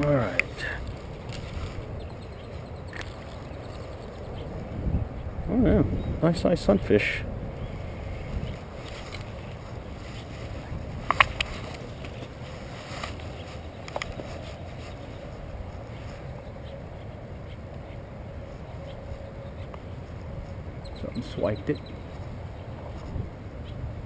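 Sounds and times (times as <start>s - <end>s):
low outdoor rumble: 0.0s - 24.0s.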